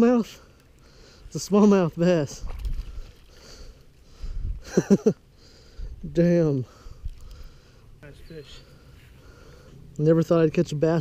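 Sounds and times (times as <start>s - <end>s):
man laughing breathily: 4.4s - 5.9s.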